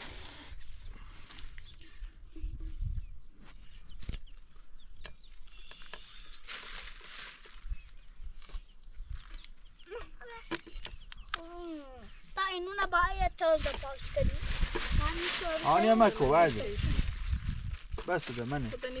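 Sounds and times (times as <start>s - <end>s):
stalks rustling: 5.3s - 11.7s, 13.5s - 19.0s
low wind rumble: 13.1s - 18.0s.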